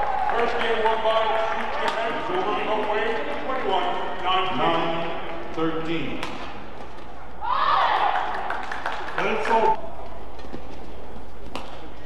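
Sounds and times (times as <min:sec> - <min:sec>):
low arena hum: 0:00.0 - 0:12.0
racket striking shuttlecock: 0:11.5 - 0:12.0.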